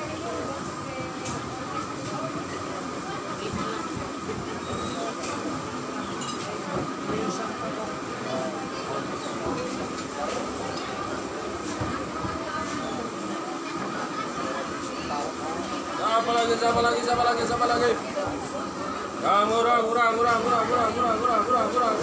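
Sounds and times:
chatter of shoppers and vendors: 0.0 - 22.0.

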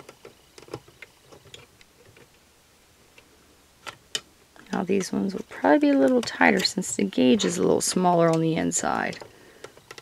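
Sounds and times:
metal hook clicking on plastic pegs: 3.8 - 10.0.

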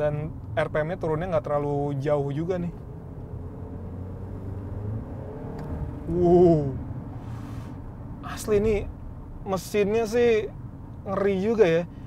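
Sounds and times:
car engine accelerating hard: 2.4 - 7.2.

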